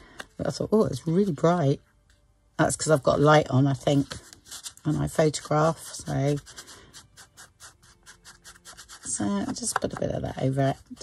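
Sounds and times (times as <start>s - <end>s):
ink applicator scratching paper: 3.8s - 11.0s.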